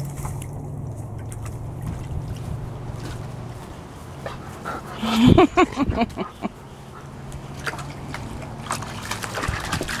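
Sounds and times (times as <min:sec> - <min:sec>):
dog splashing in water: 0:00.0 - 0:04.3, 0:06.9 - 0:10.0.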